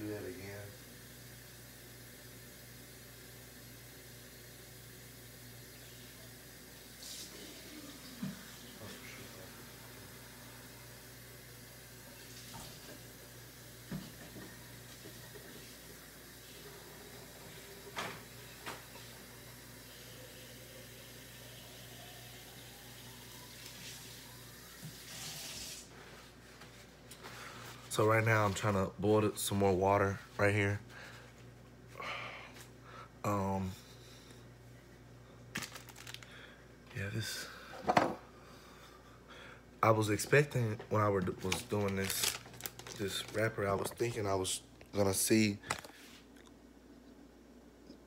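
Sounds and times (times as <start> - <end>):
tap water running: 0.0 - 26.2.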